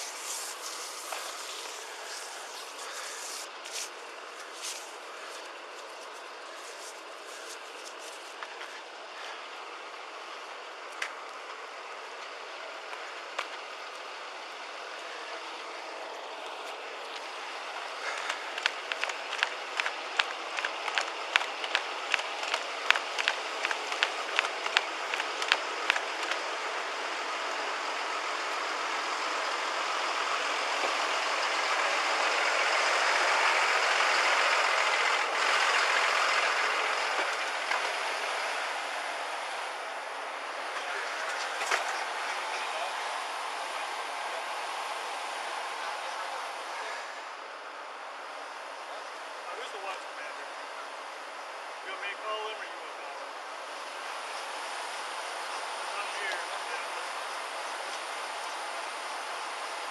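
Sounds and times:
broad rushing noise: 0.0 - 8.6, 17.5 - 26.8
quick footsteps on pavement: 0.0 - 8.8, 18.1 - 26.4.

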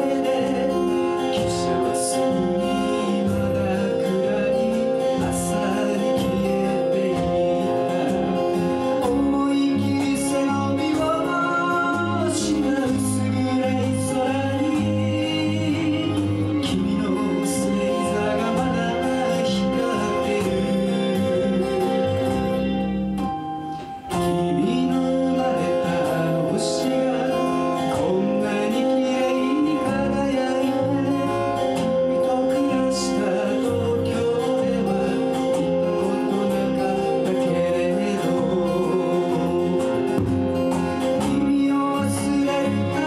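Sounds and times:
electric bass: 0.0 - 43.0
person singing: 0.0 - 43.0
strummed acoustic guitars: 0.0 - 43.0.

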